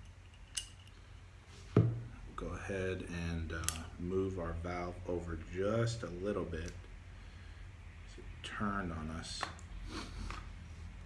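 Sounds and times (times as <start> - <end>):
light metallic click: 3.6 - 3.9.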